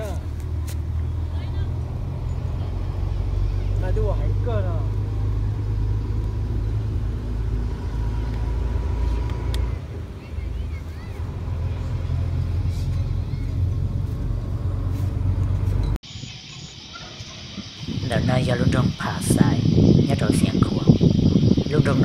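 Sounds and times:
wind buffeting microphone: 15.5 - 22.0
faint chirps: 16.0 - 22.0
high-pitched insect drone: 16.0 - 22.0.

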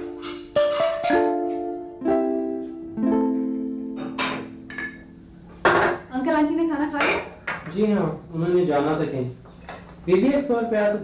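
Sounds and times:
dishes and cutlery clinking: 0.0 - 1.8, 3.4 - 6.1, 7.0 - 7.9, 9.4 - 10.4.

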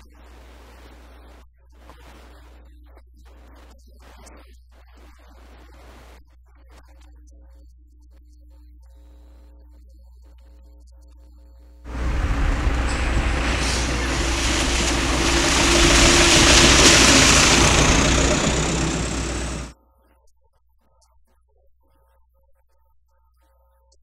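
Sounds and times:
heavy truck driving by: 11.9 - 19.7.

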